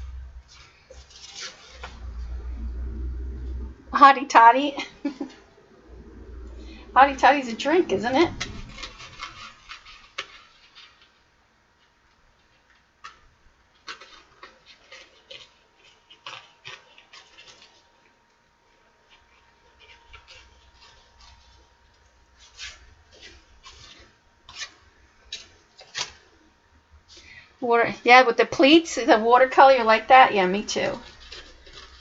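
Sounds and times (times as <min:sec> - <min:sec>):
paper rustling: 0:00.0 - 0:02.5, 0:06.6 - 0:26.4, 0:29.6 - 0:32.0.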